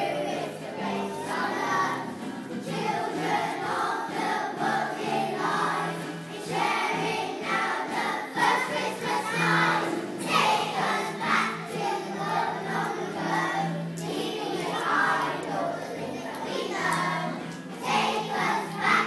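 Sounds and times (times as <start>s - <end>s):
children's choir singing: 0.0s - 19.0s.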